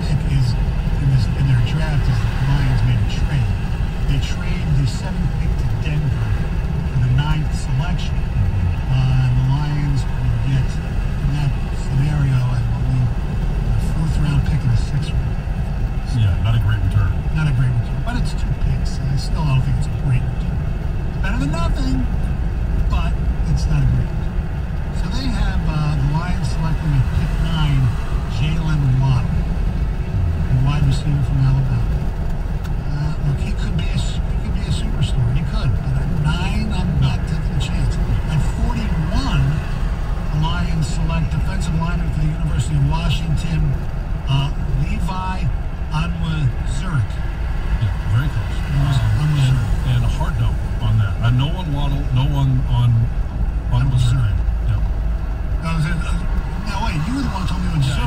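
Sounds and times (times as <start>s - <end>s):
car road and engine rumble: 0.0s - 58.0s
person talking: 7.0s - 13.2s, 21.2s - 22.2s, 25.0s - 29.4s, 30.2s - 31.9s, 32.8s - 39.7s, 40.3s - 47.2s, 47.8s - 53.1s, 55.6s - 58.0s.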